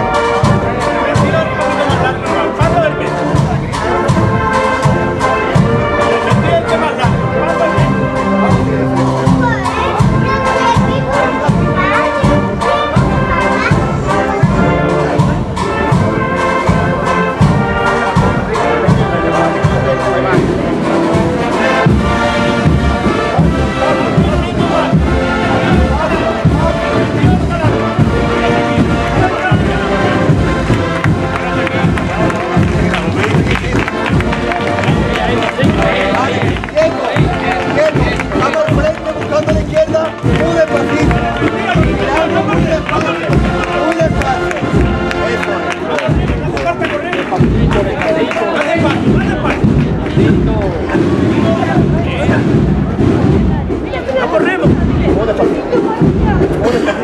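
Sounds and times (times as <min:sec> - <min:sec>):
brass band playing a march: 0:00.0 - 0:57.0
crowd voices: 0:00.0 - 0:57.0
steady drum beat: 0:00.0 - 0:57.0.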